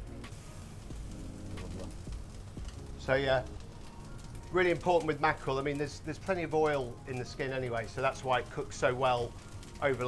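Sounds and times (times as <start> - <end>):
fish sizzling on a grill: 0.0 - 10.0
quiet background music: 0.0 - 10.0.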